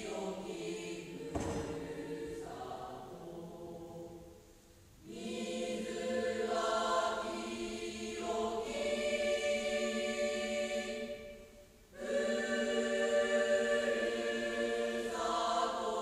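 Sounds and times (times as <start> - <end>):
choir singing sustained notes: 0.0 - 16.0.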